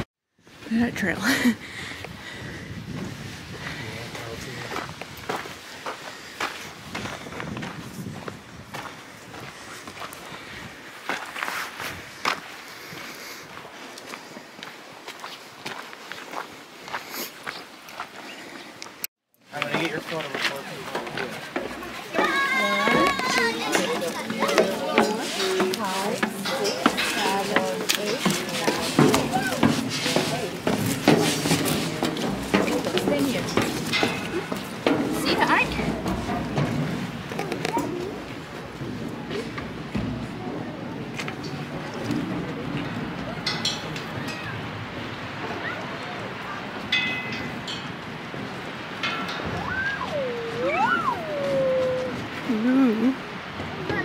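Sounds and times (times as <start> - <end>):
footsteps on gravel: 2.9 - 19.0, 19.6 - 44.3
people chattering: 19.5 - 54.0.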